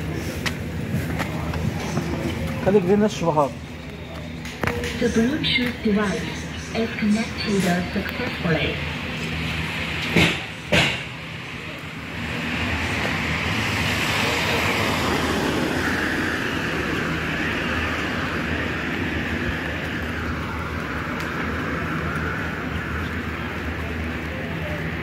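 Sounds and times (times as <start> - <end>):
car engine and tyre noise: 0.0 - 6.6, 7.6 - 25.0
sharp knocks: 10.1 - 11.1.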